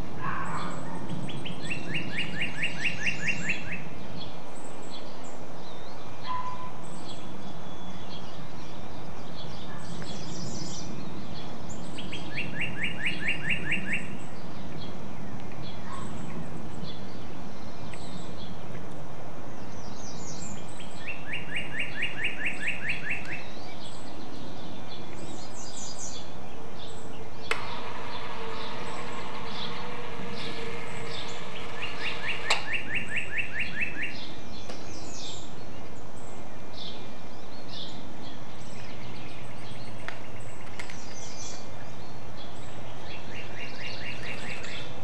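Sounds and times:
songbird twittering: 0.0s - 18.8s, 19.5s - 45.0s
sharp click: 27.4s - 33.0s.

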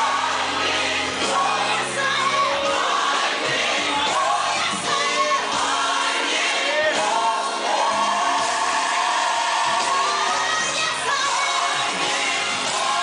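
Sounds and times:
choir singing gospel: 0.0s - 13.0s
musical accompaniment: 0.0s - 13.0s.

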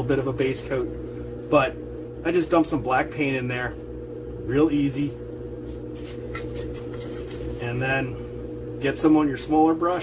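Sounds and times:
steady background hum: 0.0s - 10.0s
brush scraping and tapping can: 5.6s - 7.8s.

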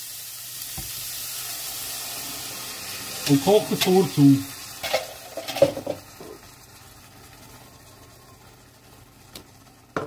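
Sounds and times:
sauce pouring into pot: 0.0s - 7.6s
hot pan hissing: 0.0s - 10.0s.

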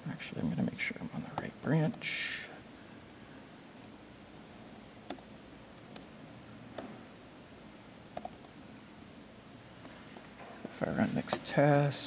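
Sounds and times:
faint room hum: 0.0s - 12.0s
laptop keys clicking: 5.1s - 6.1s, 8.2s - 8.8s.

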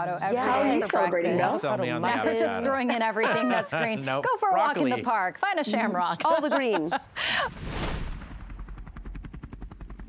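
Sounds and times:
helicopter rotor chopping: 8.0s - 10.0s.

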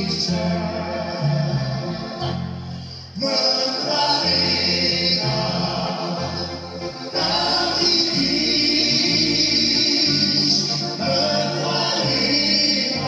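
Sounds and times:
backing voices singing: 0.0s - 13.0s
band playing pop-folk: 0.0s - 13.0s
man singing into a microphone: 7.2s - 13.0s.

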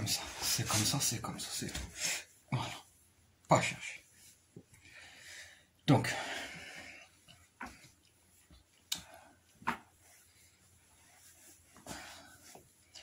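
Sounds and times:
soft fabric rustling: 0.0s - 5.6s, 6.3s - 13.0s.

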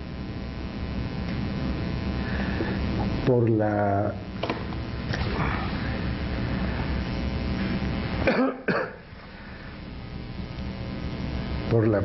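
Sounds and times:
low room hum: 0.0s - 12.0s
man coughing: 8.2s - 9.1s.

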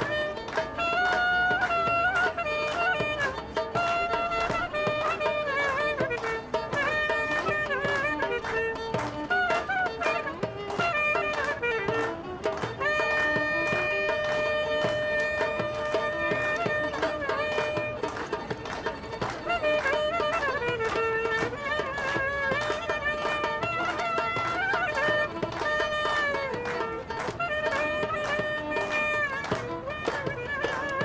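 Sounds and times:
clarinet melody: 0.0s - 31.0s
percussion beat: 0.0s - 31.0s.

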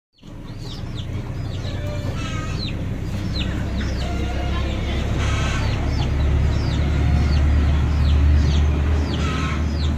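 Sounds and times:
chickens chirping: 0.2s - 9.9s
low steady rumble: 0.2s - 9.9s.

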